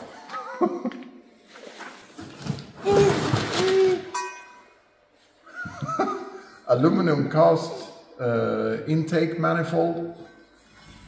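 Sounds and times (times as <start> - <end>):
cardboard and paper rustling: 1.4 - 4.1
metal scrape: 10.2 - 11.0.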